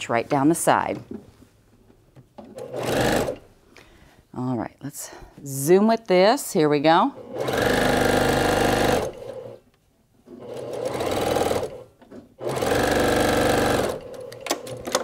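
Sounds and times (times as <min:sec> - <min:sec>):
sewing machine stitching: 0:02.5 - 0:03.4, 0:07.2 - 0:09.6, 0:10.3 - 0:15.0.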